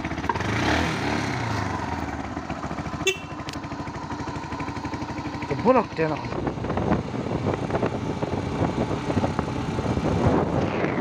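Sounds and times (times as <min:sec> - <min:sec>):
motorcycle engine idling: 0:00.0 - 0:10.4.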